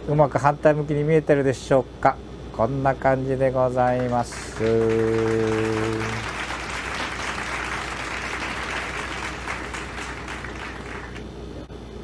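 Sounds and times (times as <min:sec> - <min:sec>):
applause: 0:03.8 - 0:11.2.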